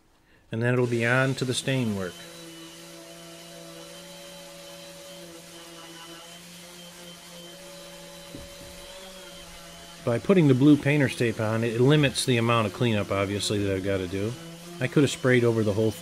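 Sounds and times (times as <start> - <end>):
orbital sander humming: 0.8 - 16.0.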